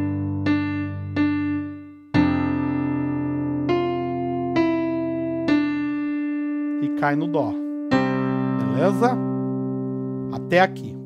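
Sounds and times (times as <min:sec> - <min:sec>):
electronic keyboard piano melody: 0:00.0 - 0:11.0.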